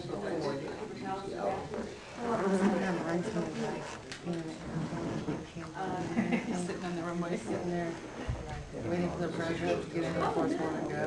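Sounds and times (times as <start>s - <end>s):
murmured conversation: 0.0s - 11.0s.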